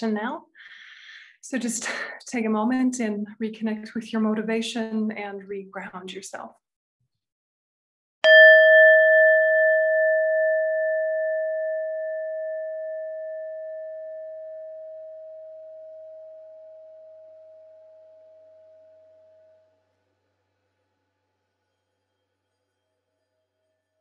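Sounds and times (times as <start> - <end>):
singing bowl ringing: 8.2 - 19.8.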